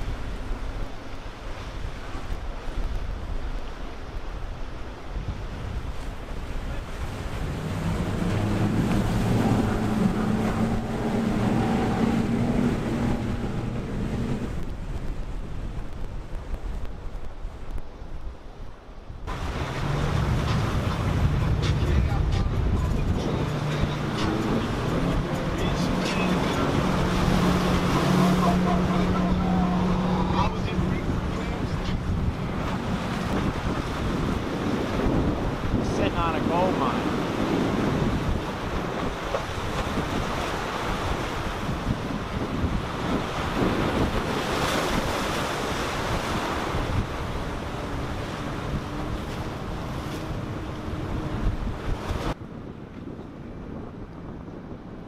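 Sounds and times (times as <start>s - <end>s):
outboard motors droning: 0.0s - 17.9s, 19.2s - 55.0s
surf: 0.0s - 55.0s
wind buffeting microphone: 0.0s - 55.0s.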